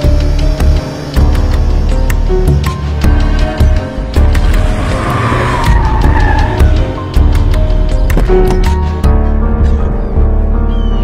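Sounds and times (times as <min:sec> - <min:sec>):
action music with heavy beat: 0:00.0 - 0:09.8
car tyres squealing: 0:04.4 - 0:07.1.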